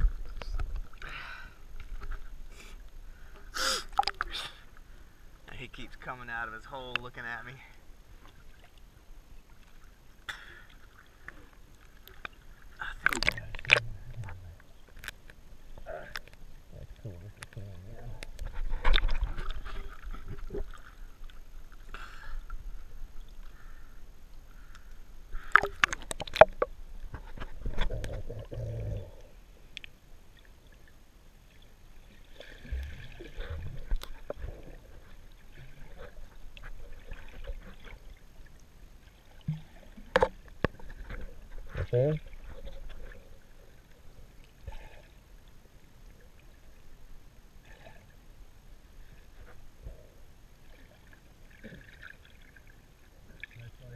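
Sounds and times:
water splashes: 0.0s - 47.0s, 50.5s - 53.9s
water sloshing and gurgling: 0.0s - 53.9s.

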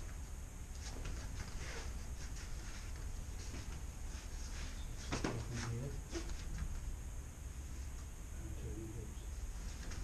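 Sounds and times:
rustle and swish of clothing: 0.0s - 6.8s, 9.4s - 10.0s
steady low hum: 0.0s - 10.0s.

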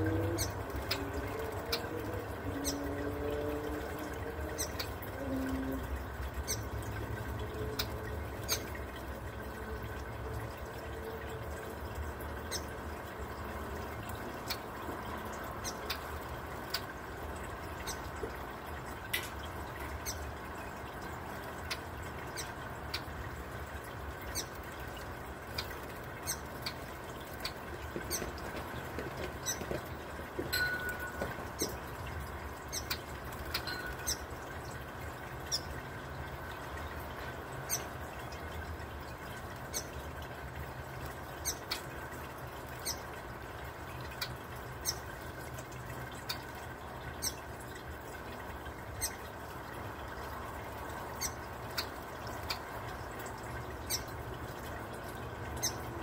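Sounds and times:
fountain water trickling: 0.0s - 56.0s.

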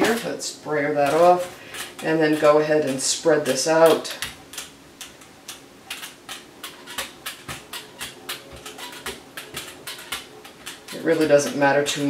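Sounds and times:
brayer rolling paint ticking: 0.0s - 12.0s.

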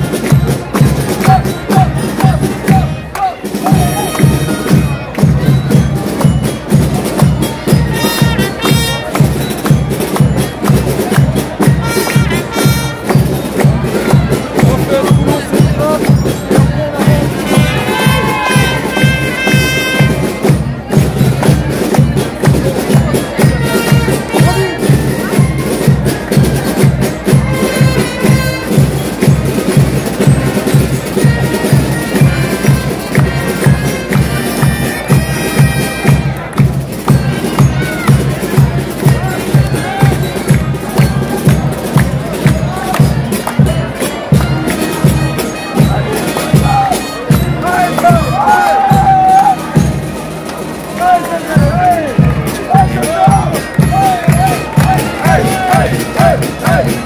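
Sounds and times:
crowd voices: 0.0s - 57.0s
drum beat: 0.0s - 57.0s
wind instruments playing: 0.0s - 57.0s.

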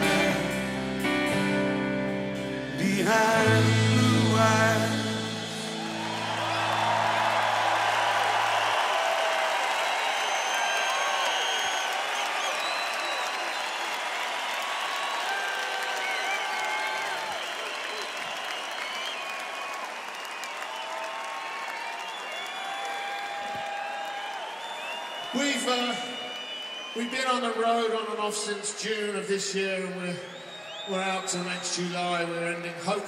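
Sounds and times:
crowd applauding and cheering: 3.2s - 33.0s
whistles and shouts: 9.8s - 14.0s, 15.0s - 27.7s, 30.0s - 32.3s.

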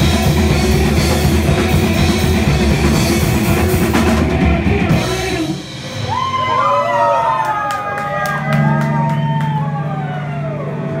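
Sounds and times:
punk rock band playing: 0.0s - 11.0s
sliding wailing guitar tones: 8.2s - 11.0s.

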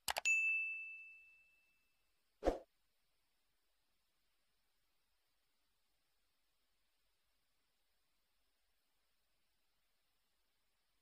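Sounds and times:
notification bell ding: 0.1s - 1.7s.

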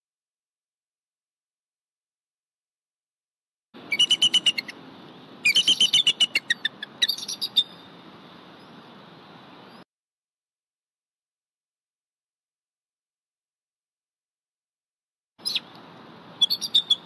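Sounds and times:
eagle piping chitter calls: 3.8s - 4.8s, 5.4s - 8.9s, 15.4s - 15.7s, 16.3s - 17.0s
faint background noise: 3.8s - 9.8s, 15.4s - 17.0s.

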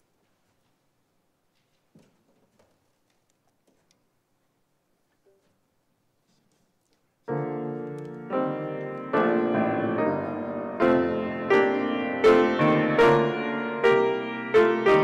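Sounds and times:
grand piano chords: 7.3s - 15.0s.

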